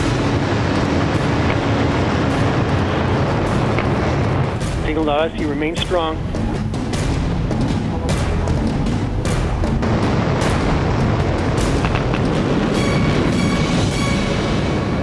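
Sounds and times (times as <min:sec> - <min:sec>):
rocket thruster rumble: 0:00.0 - 0:15.0
soundtrack music: 0:00.0 - 0:15.0.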